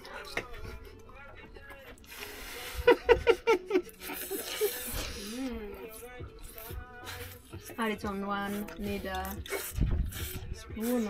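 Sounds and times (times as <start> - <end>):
person humming: 2.0 - 7.5
people laughing: 2.6 - 5.1
people slurping spaghetti: 3.9 - 11.0.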